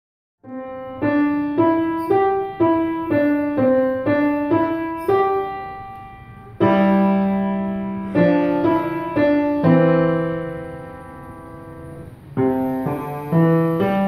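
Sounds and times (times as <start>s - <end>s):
loud piano chord with bass note: 0.4s - 14.0s
piano melody of single notes: 0.4s - 14.0s.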